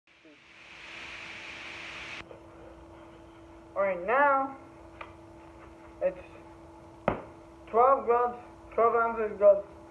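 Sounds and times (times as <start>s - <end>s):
steady hiss: 0.1s - 2.2s
faint steady hum: 0.1s - 9.9s.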